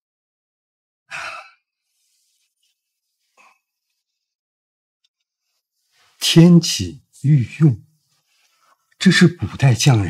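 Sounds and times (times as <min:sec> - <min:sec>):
person sighing: 0:01.1 - 0:01.6.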